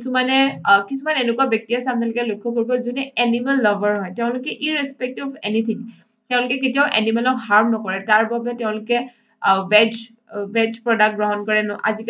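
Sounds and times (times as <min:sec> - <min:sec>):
woman lecturing: 0:00.0 - 0:12.0.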